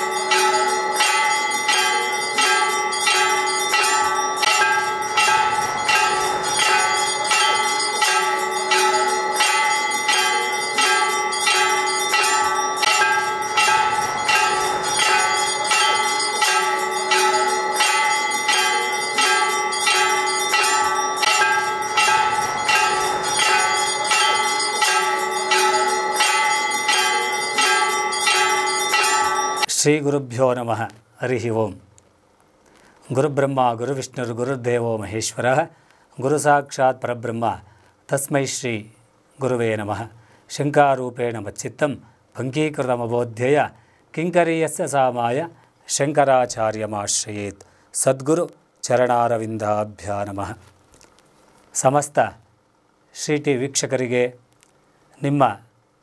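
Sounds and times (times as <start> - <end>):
bell ringing: 0.0 - 29.7.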